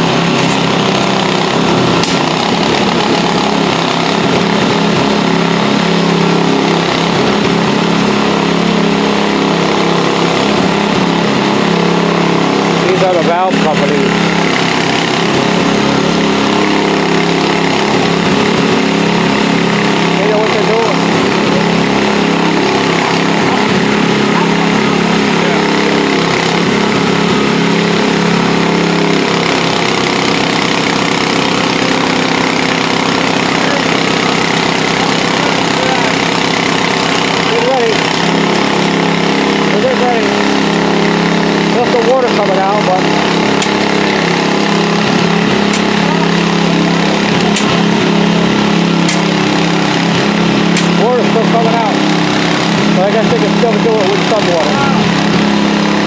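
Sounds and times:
engine running steadily: 0.0s - 56.0s.

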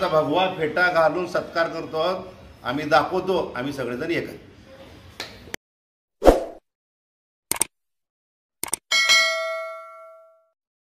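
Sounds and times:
notification bell ding: 8.9s - 10.6s.

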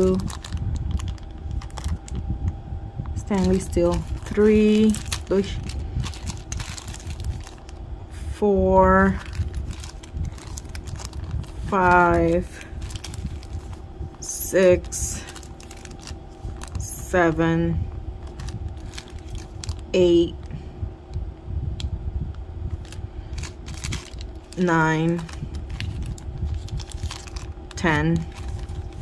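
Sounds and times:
plastic bag rustling and crinkling: 0.0s - 2.2s, 3.2s - 7.9s, 9.0s - 17.1s, 18.2s - 20.4s, 22.7s - 29.0s.

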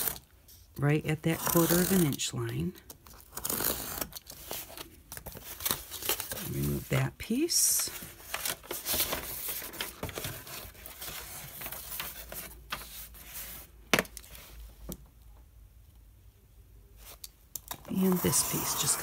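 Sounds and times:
paper and board scraping: 17.9s - 19.0s.

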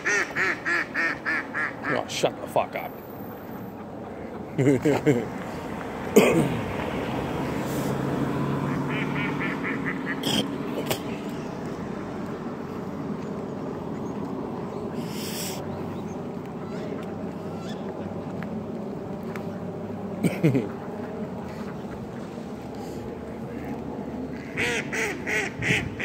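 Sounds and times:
waterfowl calling: 0.0s - 4.6s, 7.5s - 11.5s, 14.8s - 18.1s, 24.3s - 26.0s
outdoor rush: 0.0s - 26.0s.

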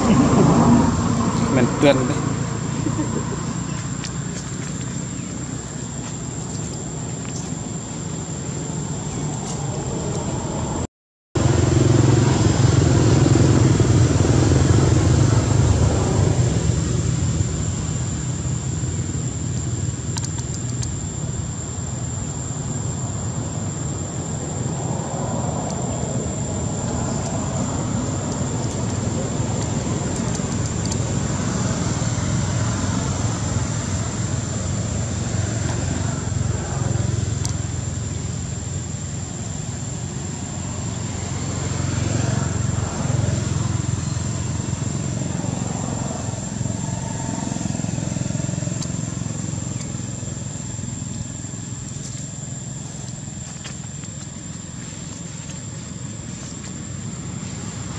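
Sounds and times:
engine rumbling: 0.0s - 57.9s.

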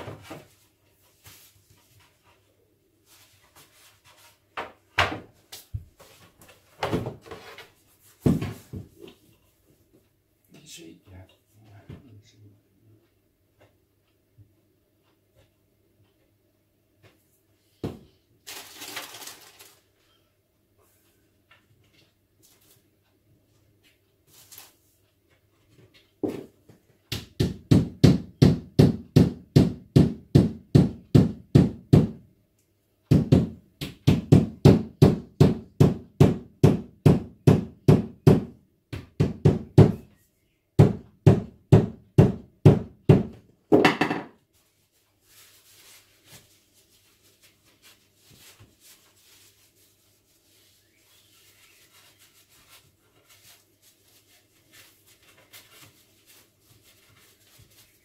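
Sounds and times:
mallet knocking on wood: 40.8s - 44.3s.

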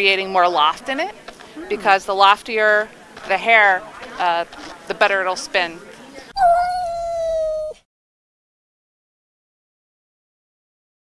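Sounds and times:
cat meowing: 6.4s - 7.8s.

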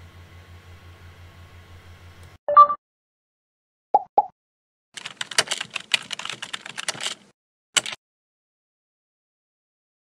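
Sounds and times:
short beeps: 2.5s - 2.8s
rapid keyboard typing clicks: 5.0s - 8.0s.

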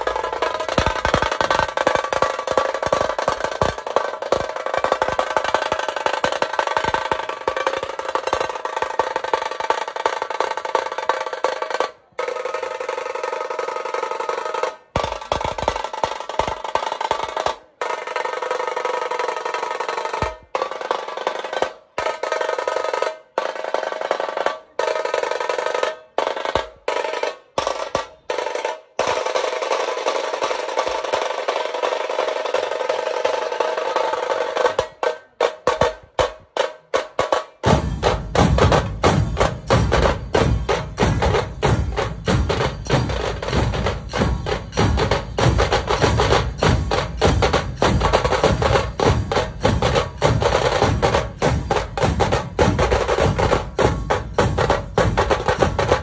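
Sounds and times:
loud drumming: 0.0s - 56.0s
music: 0.0s - 56.0s.

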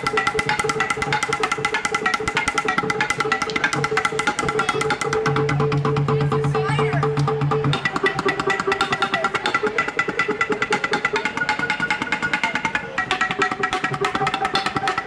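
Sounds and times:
wooden bats struck with mallets: 0.0s - 15.0s.

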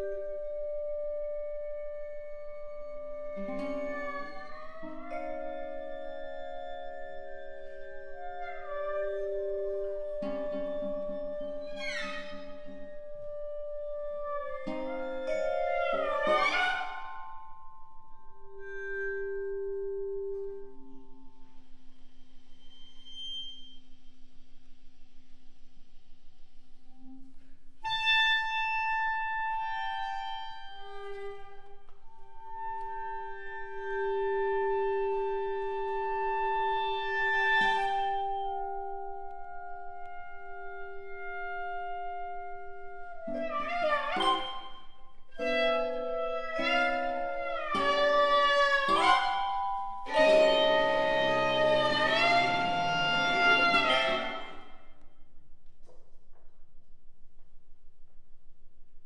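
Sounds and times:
contemporary chamber music: 0.0s - 22.6s, 26.9s - 55.2s.

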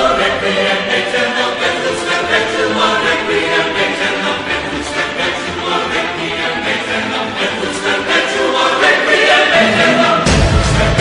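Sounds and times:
choir singing long held notes: 0.0s - 11.0s.

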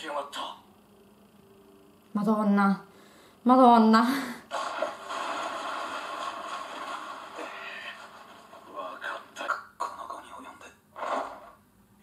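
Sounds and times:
rushing scraping action effects: 4.5s - 8.9s.

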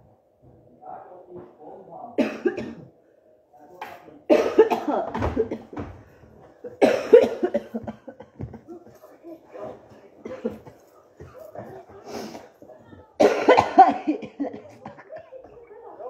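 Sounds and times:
woman coughing: 2.2s - 2.9s, 4.3s - 5.9s, 6.7s - 8.8s, 10.2s - 10.9s, 13.2s - 15.6s.

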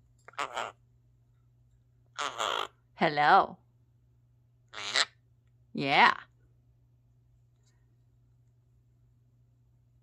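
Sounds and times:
parrot squawk: 0.3s - 0.8s, 2.2s - 2.8s, 4.7s - 5.2s.

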